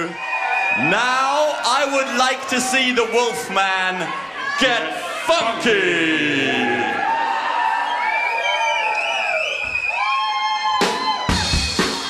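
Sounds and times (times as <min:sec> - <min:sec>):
crowd whooping: 0:00.0 - 0:12.0
drum kit playing: 0:10.8 - 0:12.0.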